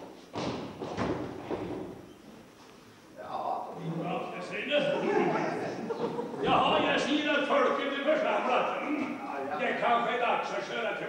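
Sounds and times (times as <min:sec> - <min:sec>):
thumps on wooden stage: 0:00.0 - 0:02.0.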